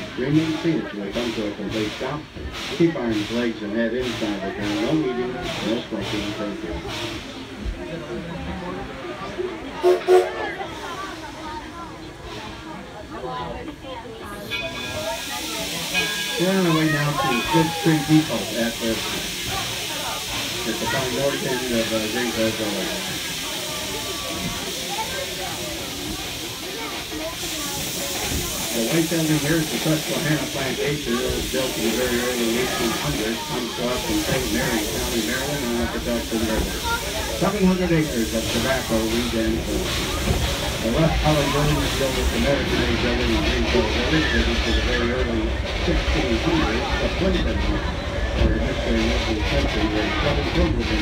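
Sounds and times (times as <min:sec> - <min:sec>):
faint voices: 0:00.0 - 0:51.0
steam locomotive hissing: 0:00.0 - 0:51.0
wheels rumbling on rails: 0:00.0 - 0:51.0.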